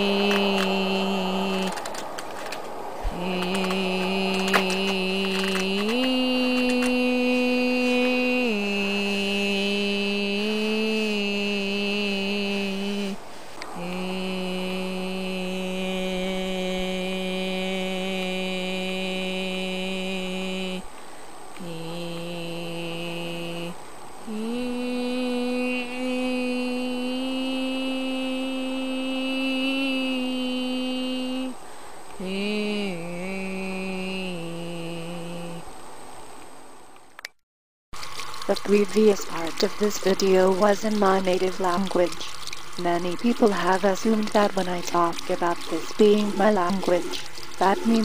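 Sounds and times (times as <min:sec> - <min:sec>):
person humming: 0:00.0 - 0:20.9, 0:21.6 - 0:35.7, 0:38.5 - 0:48.0
person droning wordless note: 0:03.0 - 0:20.8, 0:21.6 - 0:31.5, 0:32.2 - 0:35.6.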